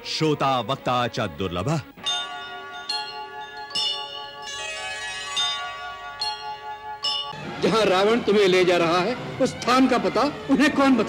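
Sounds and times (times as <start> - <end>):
bell-like chime notes: 2.0 - 7.4.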